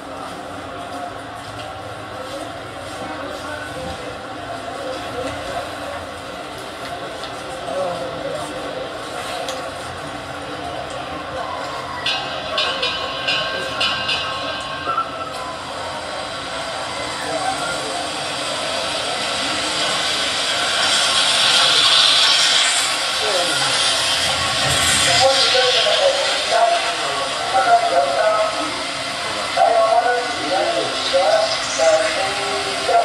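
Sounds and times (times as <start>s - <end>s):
spectators' voices: 0.0s - 33.0s
rushing sound: 12.1s - 33.0s.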